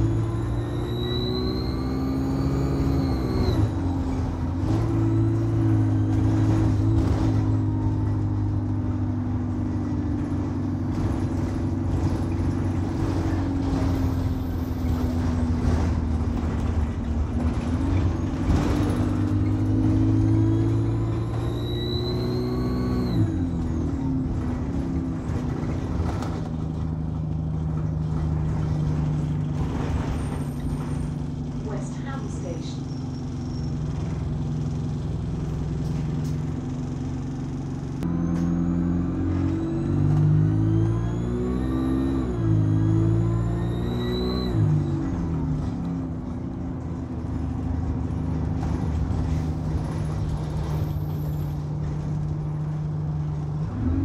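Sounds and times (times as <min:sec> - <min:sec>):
turbocharger whine: 0:00.0 - 0:26.9, 0:31.6 - 0:54.0
bus engine drone: 0:00.0 - 0:54.0.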